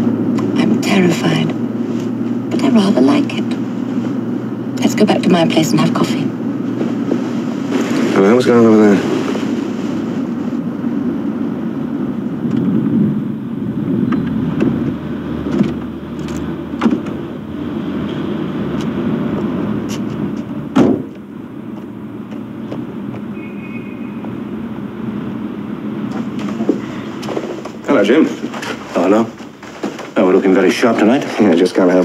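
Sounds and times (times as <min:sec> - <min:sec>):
car rumble from inside cabin: 0:00.0 - 0:32.0
car door slamming: 0:16.8 - 0:17.2, 0:20.7 - 0:21.2.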